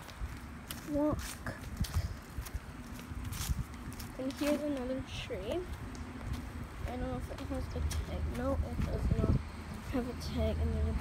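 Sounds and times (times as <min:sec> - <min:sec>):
footsteps walking: 0:00.0 - 0:10.1.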